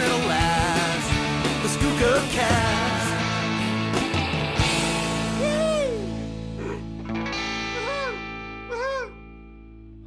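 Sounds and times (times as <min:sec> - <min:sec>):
distorted electric guitar: 0:00.0 - 0:10.0.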